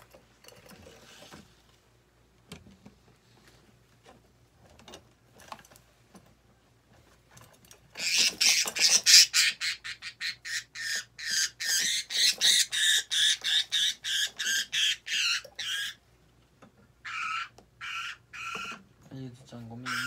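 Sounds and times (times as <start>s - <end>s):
budgerigar squawking: 8.0s - 16.0s, 17.0s - 18.8s, 19.8s - 20.0s.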